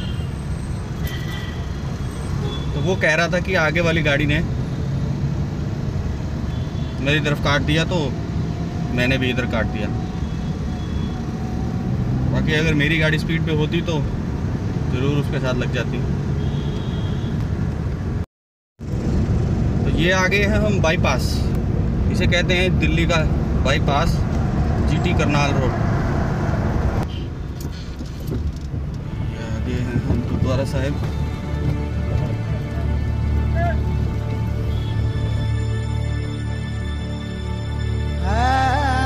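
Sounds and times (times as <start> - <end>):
car engine and road rumble: 0.0 - 39.0
distant vehicle horn: 16.4 - 17.4, 29.0 - 30.3, 31.0 - 36.2.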